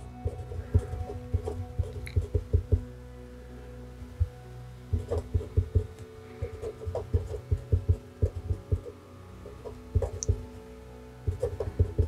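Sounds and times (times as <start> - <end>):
faint steady hum: 0.0 - 12.0
marker pen writing on paper: 0.2 - 2.8, 4.9 - 5.8, 6.4 - 8.9, 11.3 - 12.0.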